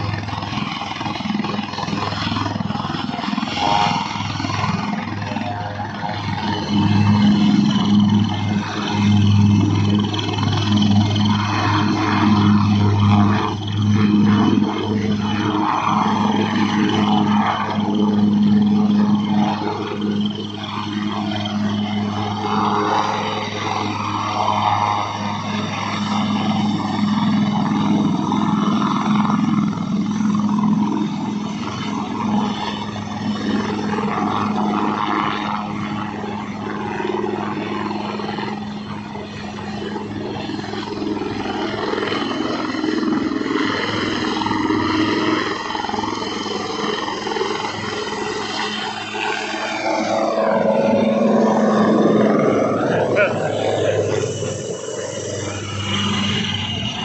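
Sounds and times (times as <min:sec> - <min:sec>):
helicopter rotor drone: 0:00.0 - 0:57.0
helicopter turbine whine: 0:00.0 - 0:57.0.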